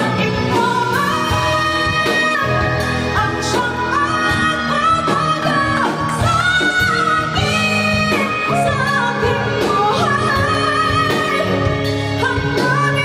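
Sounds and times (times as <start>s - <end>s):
live band playing: 0.0s - 13.0s
woman singing into microphone: 0.0s - 13.0s.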